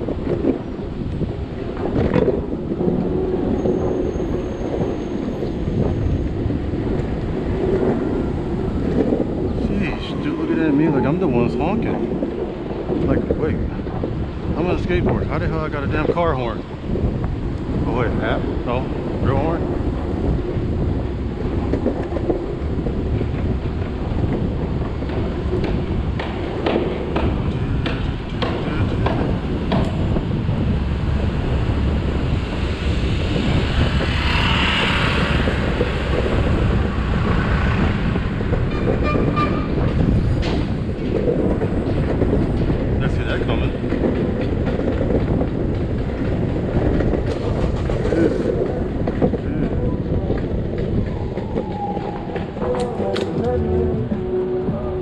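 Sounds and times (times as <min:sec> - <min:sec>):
skateboard wheels rolling on pavement: 0:00.0 - 0:55.0.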